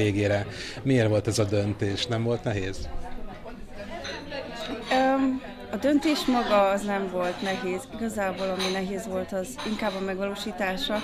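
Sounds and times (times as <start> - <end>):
people talking: 4.2 - 11.0.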